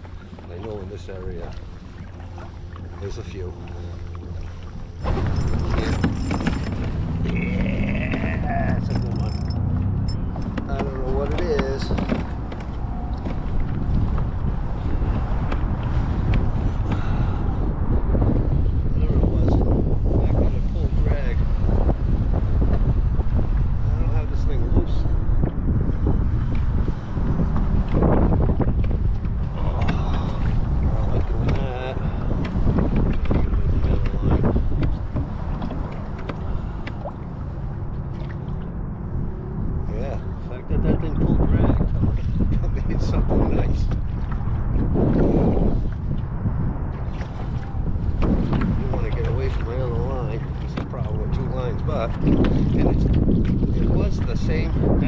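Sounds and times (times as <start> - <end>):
water lapping against kayak hull: 0.0 - 24.1, 24.7 - 55.0
wind buffeting microphone: 0.0 - 55.0.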